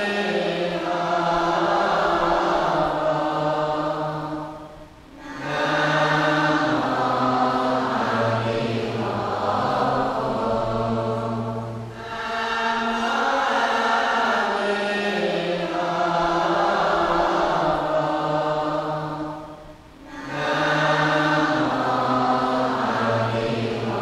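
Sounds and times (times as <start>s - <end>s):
group chanting: 0.0s - 24.0s.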